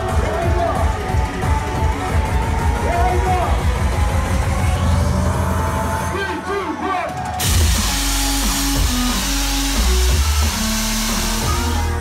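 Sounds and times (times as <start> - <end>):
electronic dance music: 0.0 - 12.0
sliding heavy bass line: 7.4 - 12.0.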